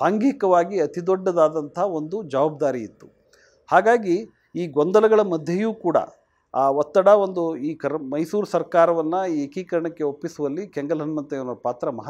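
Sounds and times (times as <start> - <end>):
man speaking: 0.0 - 3.1, 3.7 - 12.0.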